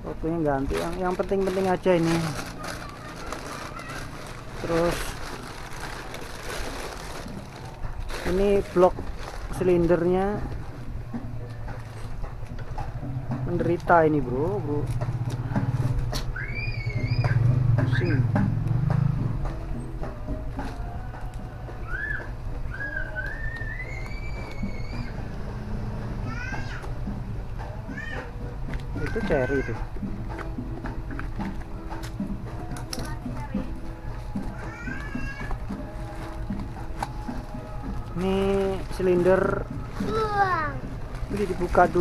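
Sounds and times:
high rising voice-like call: 16.3s - 18.1s, 21.8s - 25.3s.

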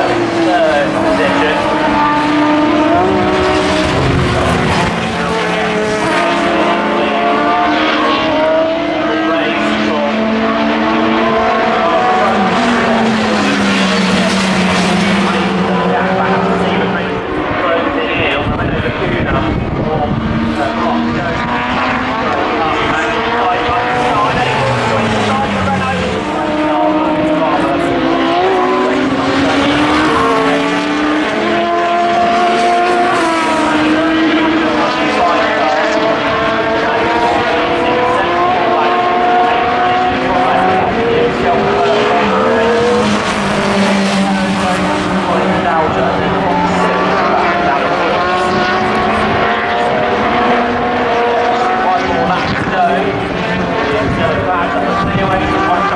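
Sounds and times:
race cars racing past: 0.0s - 55.9s.

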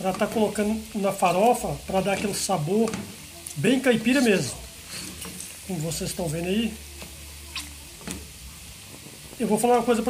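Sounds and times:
fat sizzling in a pan: 0.0s - 10.0s.

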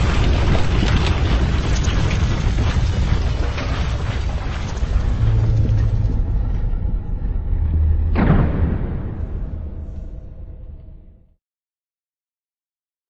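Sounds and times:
crackling like breaking stone: 0.0s - 6.3s
deep continuous rumble: 0.0s - 11.4s.

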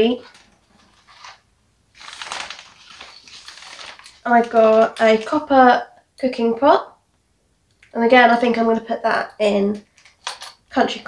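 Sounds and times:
plastic bag crinkling: 0.2s - 5.6s.

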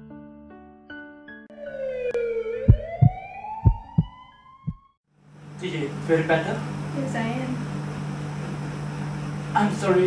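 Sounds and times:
ambulance siren wailing: 1.5s - 5.0s
heavy low thumps: 2.6s - 4.1s.

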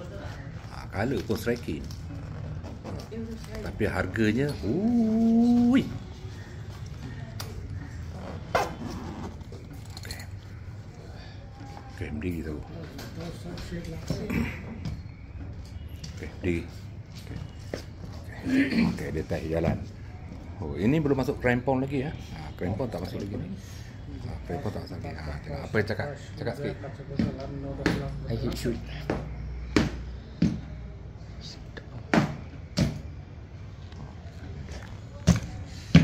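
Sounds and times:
indistinct voices: 0.0s - 15.5s.

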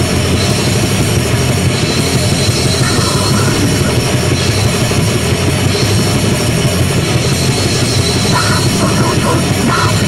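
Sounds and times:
distorted guitar and bass: 0.0s - 10.0s
rapid drumming: 0.0s - 10.0s.

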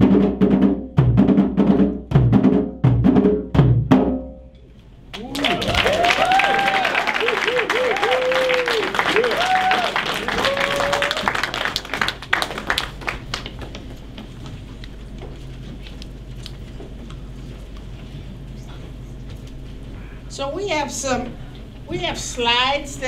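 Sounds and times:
people whooping and cheering: 5.1s - 12.2s
audience applauding: 5.1s - 14.0s.

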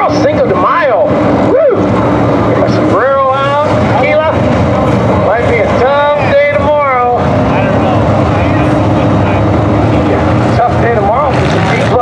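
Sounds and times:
racecar engines: 0.0s - 12.0s.

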